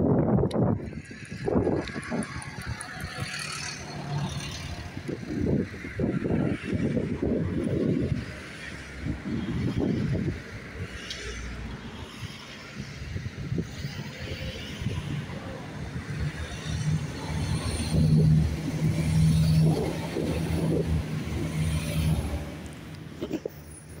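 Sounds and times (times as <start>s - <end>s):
diesel train passing: 0.2s - 24.0s.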